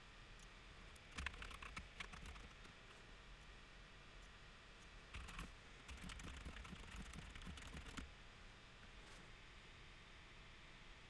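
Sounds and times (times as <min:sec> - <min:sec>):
computer keyboard keystrokes: 0:01.1 - 0:02.7, 0:05.2 - 0:08.0.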